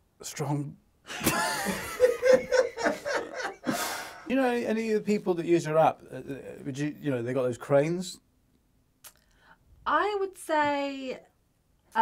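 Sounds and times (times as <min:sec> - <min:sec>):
person laughing: 0:01.1 - 0:04.3
breathy gasp: 0:03.6 - 0:04.3.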